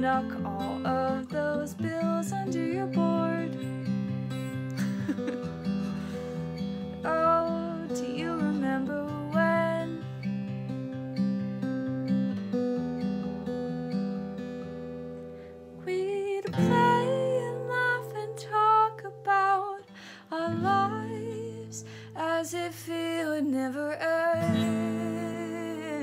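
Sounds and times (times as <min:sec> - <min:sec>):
woman singing: 0:00.0 - 0:05.4, 0:07.0 - 0:10.2, 0:15.8 - 0:26.0
acoustic guitar chords: 0:00.0 - 0:22.7, 0:23.4 - 0:26.0.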